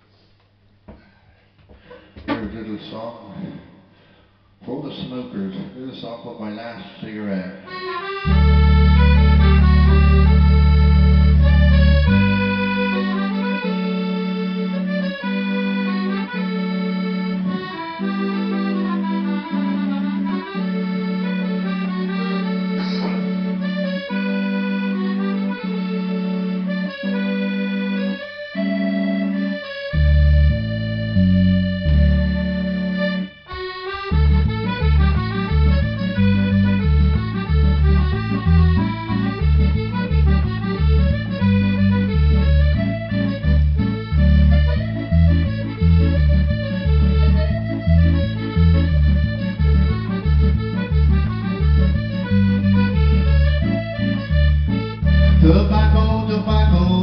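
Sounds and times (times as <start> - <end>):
piano accordion folk music: 7.6 - 57.0.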